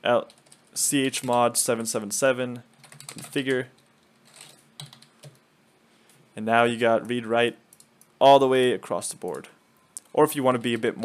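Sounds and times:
faint computer keyboard typing: 0.2s - 1.5s, 2.6s - 5.4s, 7.7s - 8.2s.

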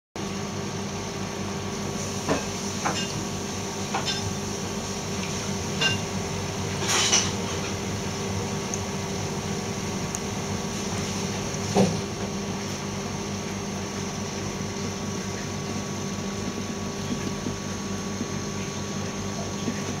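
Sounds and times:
aquarium pumps humming: 0.2s - 20.0s.

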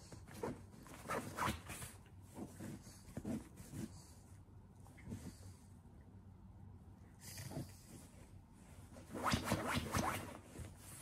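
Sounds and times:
dog scratching fabric dog bed: 0.3s - 4.0s, 9.0s - 11.0s.

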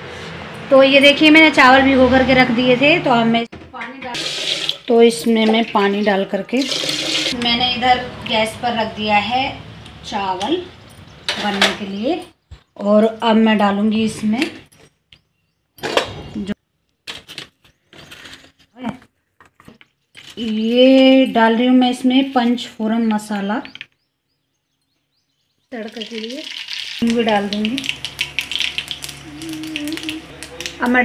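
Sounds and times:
seeds sizzling in hot oil: 25.8s - 30.8s
person speaking: 29.2s - 31.0s.

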